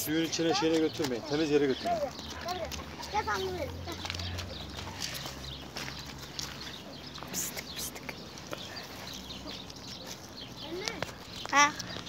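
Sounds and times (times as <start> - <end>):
footsteps on leafy dirt: 0.0 - 12.0.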